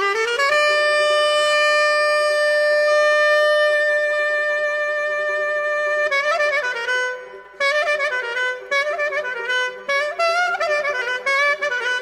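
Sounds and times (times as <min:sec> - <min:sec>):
wind instrument note: 0:00.0 - 0:12.0.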